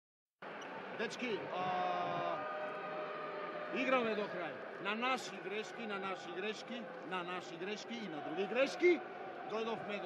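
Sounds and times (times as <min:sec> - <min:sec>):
sports hall background noise: 0:00.4 - 0:10.0.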